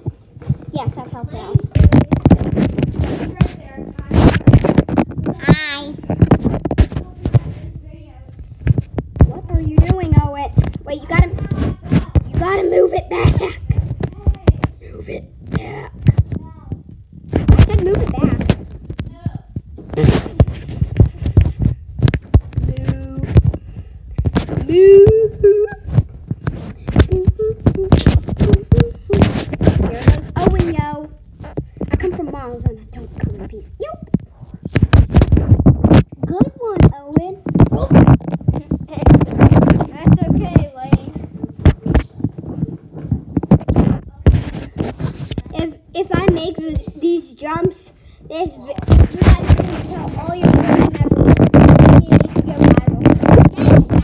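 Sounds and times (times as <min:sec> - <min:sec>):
camera being jostled: 0:01.5 - 0:07.6, 0:15.5 - 0:47.0, 0:48.8 - 0:54.0
children's voices calling out: 0:26.9 - 0:31.1.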